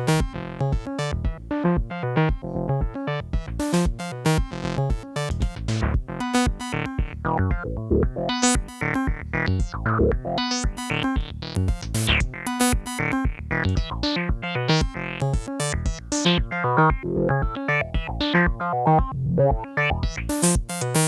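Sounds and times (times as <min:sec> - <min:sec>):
modular synthesizer sequenced notes: 0:00.0 - 0:21.0.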